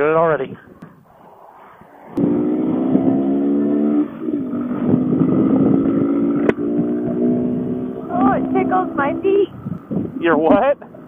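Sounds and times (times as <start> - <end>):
motorcycle engine pulling away: 2.0 - 10.4.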